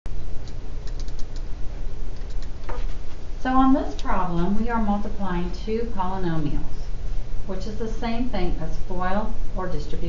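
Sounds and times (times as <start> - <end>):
steady low hum: 0.1 - 10.0
computer mouse clicks: 0.4 - 1.5, 2.2 - 2.5.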